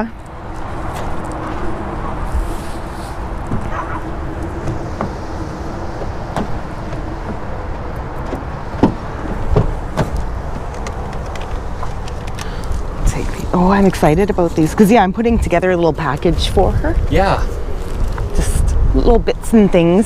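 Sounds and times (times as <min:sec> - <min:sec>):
steady outdoor noise: 0:00.0 - 0:20.0
truck door latch clicks and knocks: 0:08.2 - 0:11.6.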